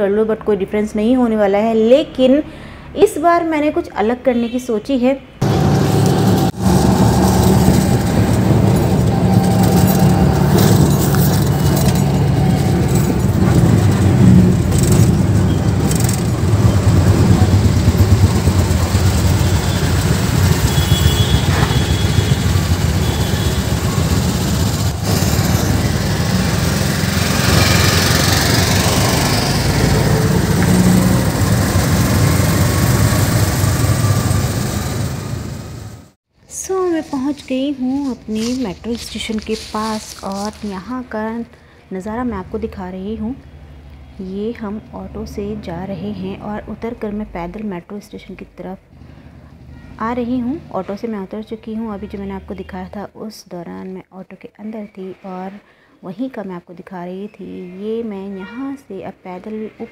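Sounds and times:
auto-rickshaw engine rumble: 0:05.4 - 0:36.2.

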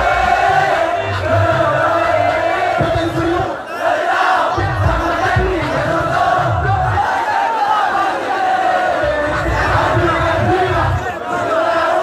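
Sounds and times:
crowd shouting and singing: 0:00.0 - 0:12.0.

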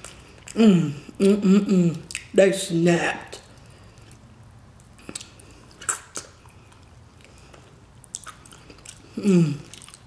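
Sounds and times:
quiet chewing: 0:00.0 - 0:02.3, 0:03.4 - 0:10.0
wet mouth clicks and smacks: 0:02.0 - 0:02.3, 0:04.8 - 0:06.9, 0:08.0 - 0:09.1.

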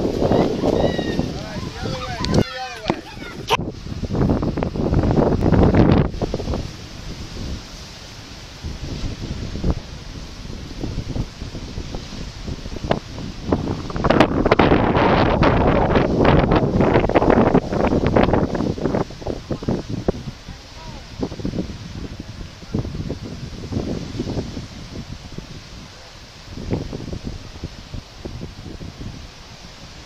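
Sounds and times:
surf breaking on rocky shore: 0:00.0 - 0:30.0
wind buffeting microphone: 0:00.0 - 0:30.0.

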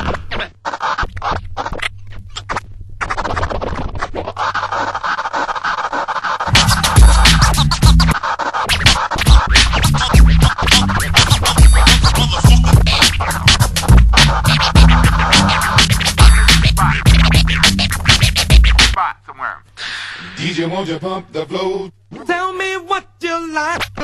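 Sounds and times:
turntable scratching: 0:00.0 - 0:19.0, 0:23.7 - 0:24.0
heavy bass and drum beat: 0:06.4 - 0:19.0.

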